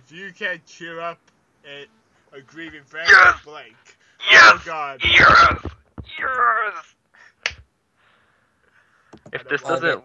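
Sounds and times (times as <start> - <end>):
short sharp snap: 7.4 - 7.6.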